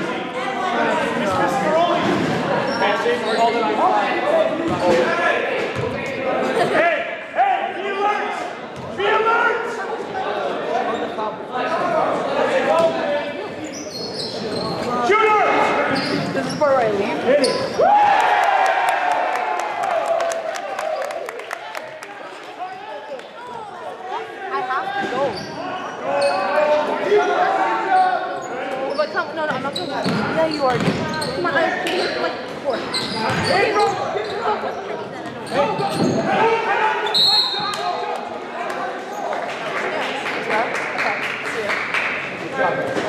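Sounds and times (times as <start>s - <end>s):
shoe squeaks and clicks: 13.6s - 14.9s, 15.8s - 16.8s, 17.4s - 17.8s, 27.9s - 36.3s, 37.0s - 37.9s
basketball bouncing on court: 29.5s - 31.4s, 33.3s - 33.5s.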